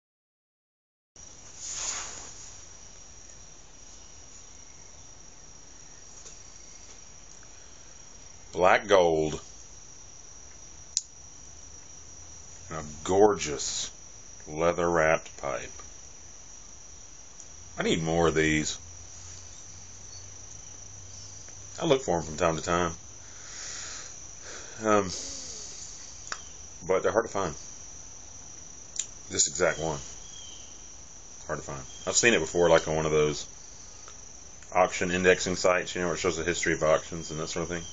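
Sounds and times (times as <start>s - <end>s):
faint hiss: 1.2s - 37.9s
faint low background noise: 1.2s - 37.9s
insects chorus: 1.2s - 37.9s
man speaking: 8.6s - 9.4s, 12.7s - 15.8s, 17.8s - 18.8s, 21.8s - 23.0s, 24.8s - 25.4s, 26.8s - 27.6s, 29.3s - 30.1s, 31.4s - 33.5s, 34.7s - 37.8s.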